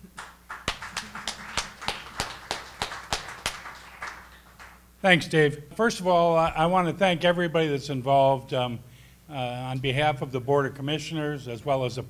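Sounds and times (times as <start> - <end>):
light audience applause: 0.0 - 4.8
single person clapping: 0.0 - 4.8.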